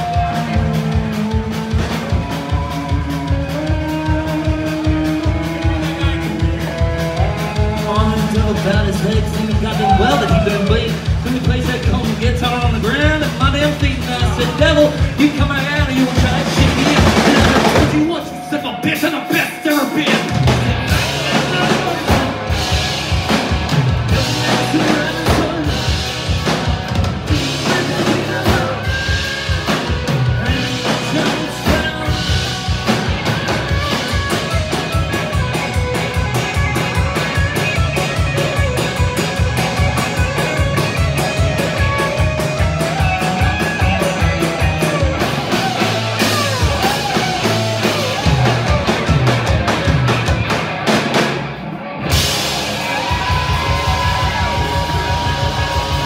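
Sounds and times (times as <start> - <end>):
bass guitar: 0.0 - 56.0
drum kit: 0.0 - 56.0
electric guitar lead: 0.0 - 56.0.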